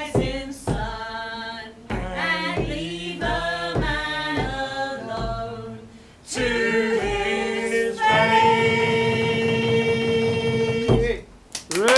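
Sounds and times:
vocal group singing in harmony: 0.0s - 11.2s.

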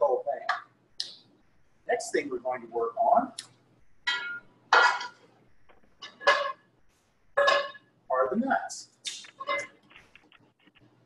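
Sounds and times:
metal pans clanking on grates: 4.1s - 5.2s, 6.0s - 6.6s, 7.4s - 7.8s.

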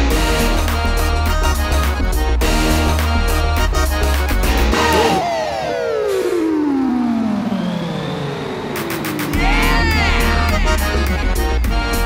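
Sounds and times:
falling sliding tone: 4.9s - 11.3s.

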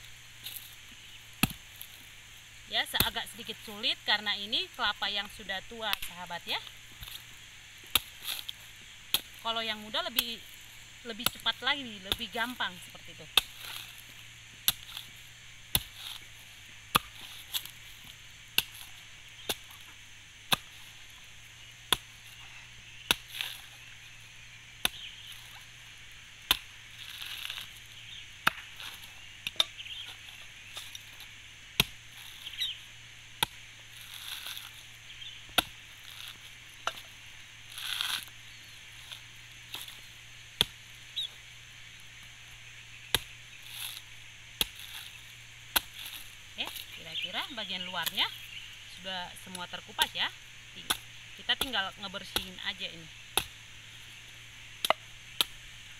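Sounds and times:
knife chopping coconut husk: 0.4s - 2.1s, 2.8s - 4.3s, 5.2s - 24.1s, 24.7s - 37.1s, 37.7s - 41.4s, 43.0s - 48.5s, 50.8s - 55.9s.

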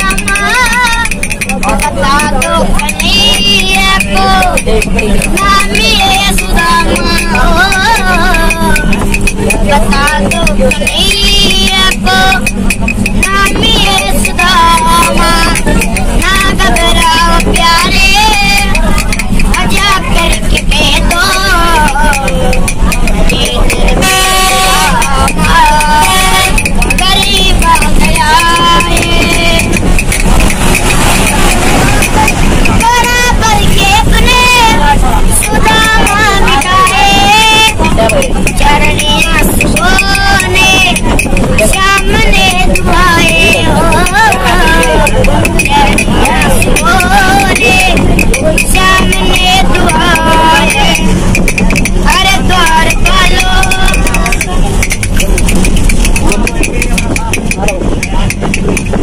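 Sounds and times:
boy singing: 0.0s - 59.0s
bus engine hum: 0.0s - 59.0s
clappers clicking: 0.0s - 59.0s
quick steady ticking: 0.0s - 59.0s.

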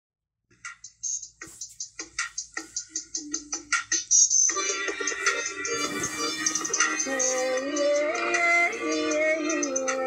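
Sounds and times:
high ticking beat: 0.5s - 10.0s.

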